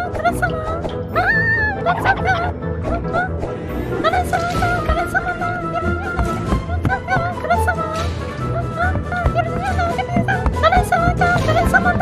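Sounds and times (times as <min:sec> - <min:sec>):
background music: 0:00.0 - 0:12.0
cartoon girl whimpering: 0:00.5 - 0:03.4.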